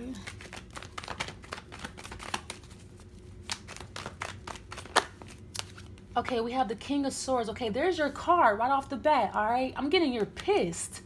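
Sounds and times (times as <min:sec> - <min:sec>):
cards being shuffled: 0:00.1 - 0:06.4
cards snapping: 0:00.2 - 0:06.0.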